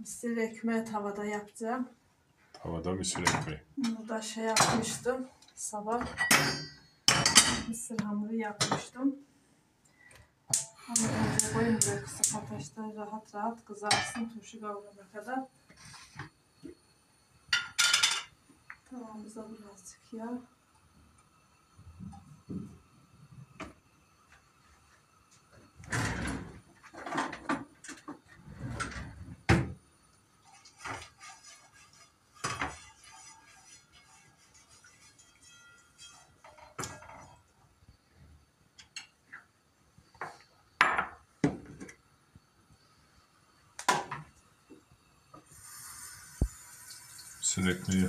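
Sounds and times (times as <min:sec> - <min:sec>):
pans and utensils clattering: 0:03.1 - 0:05.0, 0:06.0 - 0:07.8, 0:10.5 - 0:12.6, 0:13.9 - 0:14.3, 0:17.5 - 0:18.4, 0:25.9 - 0:29.8, 0:30.4 - 0:37.5.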